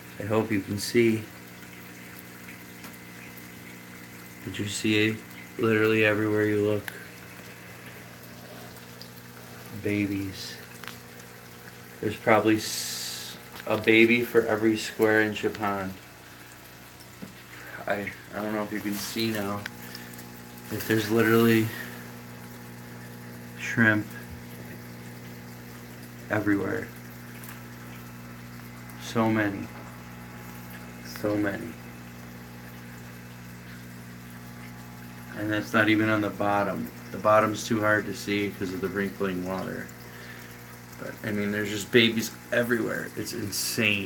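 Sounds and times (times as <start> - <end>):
faint water hiss: 0.0 - 44.0
low steady hum: 0.0 - 44.0
soft bubbling of aeration: 0.0 - 44.0.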